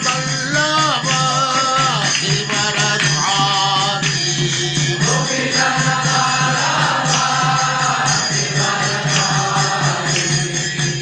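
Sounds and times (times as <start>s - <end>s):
mantra chanting: 0.0s - 4.1s
musical accompaniment: 0.0s - 11.0s.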